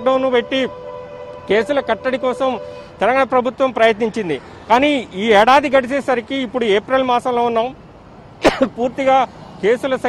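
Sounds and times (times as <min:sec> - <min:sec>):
man speaking into a microphone: 0:00.0 - 0:00.8, 0:01.4 - 0:07.8, 0:08.4 - 0:10.0
street traffic: 0:00.0 - 0:10.0.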